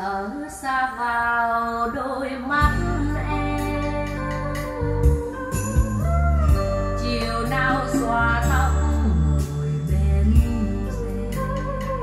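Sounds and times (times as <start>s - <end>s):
person singing: 0.0s - 12.0s
song through loudspeakers: 0.0s - 12.0s
steady bass: 2.6s - 12.0s.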